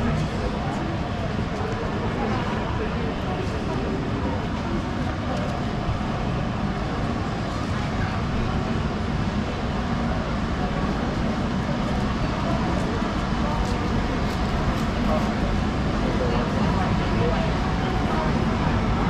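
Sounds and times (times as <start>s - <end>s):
chatter of passers-by: 0.0s - 19.0s
low traffic rumble: 0.0s - 19.0s.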